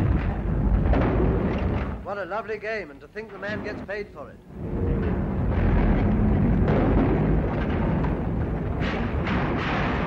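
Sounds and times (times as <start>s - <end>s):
masonry crashing down: 0.0s - 2.2s, 4.8s - 10.0s.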